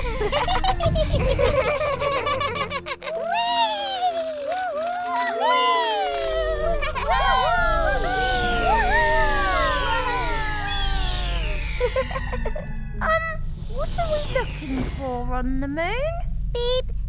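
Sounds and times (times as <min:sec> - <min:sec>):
low rumble: 0:00.0 - 0:02.9, 0:06.4 - 0:17.0
cartoon children's playful calls: 0:00.0 - 0:14.5.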